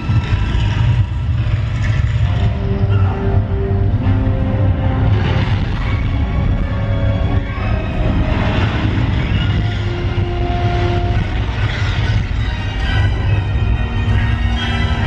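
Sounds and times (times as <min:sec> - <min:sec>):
deep rumble: 0:00.0 - 0:15.0
suspenseful orchestral music: 0:00.0 - 0:15.0.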